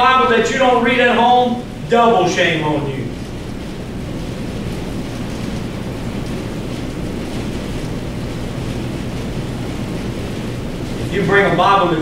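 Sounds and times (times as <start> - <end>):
low room rumble and hiss: 0.0 - 12.0
steady low hum: 0.0 - 12.0.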